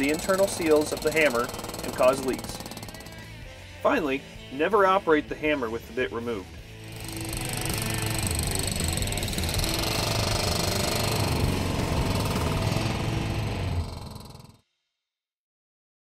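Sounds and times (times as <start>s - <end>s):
skid steer engine running: 0.0s - 3.3s, 6.8s - 14.6s
hydraulic hammer pounding concrete: 0.0s - 3.4s, 6.8s - 14.6s.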